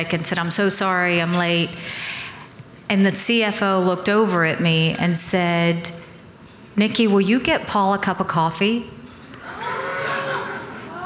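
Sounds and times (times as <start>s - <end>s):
audience oohing: 9.4s - 11.0s.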